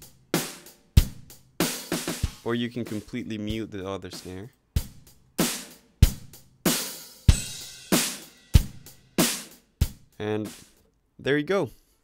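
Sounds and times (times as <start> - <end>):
electronic snare drum: 0.0 - 10.8.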